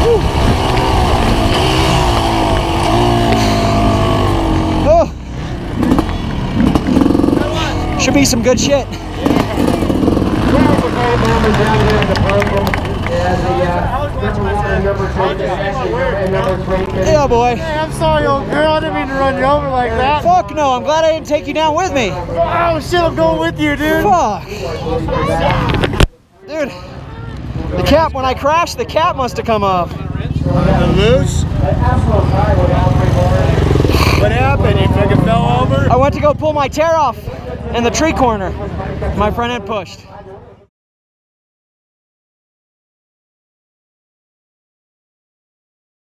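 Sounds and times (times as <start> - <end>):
motorcycle engine running at low revs: 0.0 - 7.6, 9.2 - 13.0
voices: 0.0 - 40.7
people talking: 2.9 - 5.2, 7.2 - 40.6.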